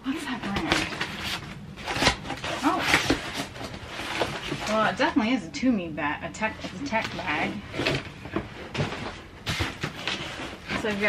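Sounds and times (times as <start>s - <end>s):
cardboard scraping and crackling: 0.1s - 5.2s, 6.6s - 11.0s.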